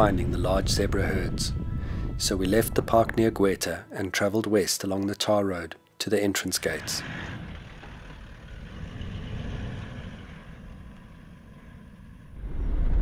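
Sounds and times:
road noise: 0:06.6 - 0:13.0
car engine rumble: 0:07.0 - 0:13.0.

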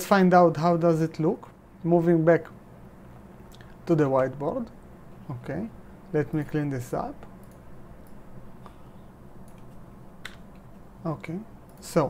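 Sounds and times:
computer clicks: 0:07.2 - 0:08.8, 0:09.4 - 0:10.7, 0:11.6 - 0:12.0.

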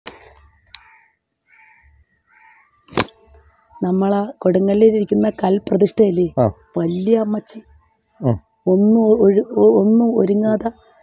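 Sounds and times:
woman speaking: 0:03.8 - 0:07.7, 0:08.6 - 0:10.8.

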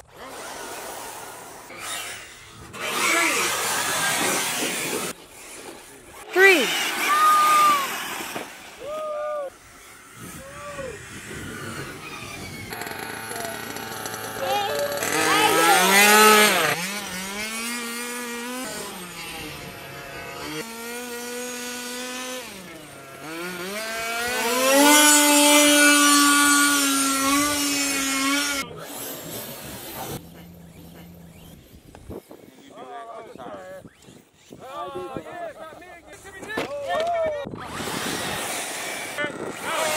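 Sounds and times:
radio-controlled car motors: 0:00.0 - 0:08.8, 0:09.5 - 0:36.6, 0:37.5 - 0:39.9.

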